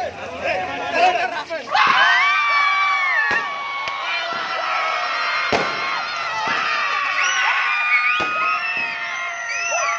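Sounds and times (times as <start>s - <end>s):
young men cheering and shouting: 0.1s - 9.9s
whoops: 1.7s - 9.9s
sharp cracks: 5.4s - 6.8s.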